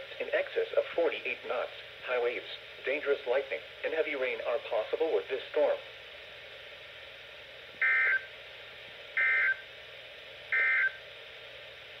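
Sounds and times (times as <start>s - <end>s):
steady radio hiss: 0.0s - 12.0s.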